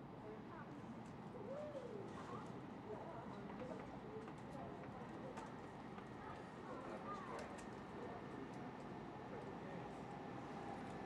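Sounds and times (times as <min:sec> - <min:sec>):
faint indistinct voices: 0:00.2 - 0:11.0.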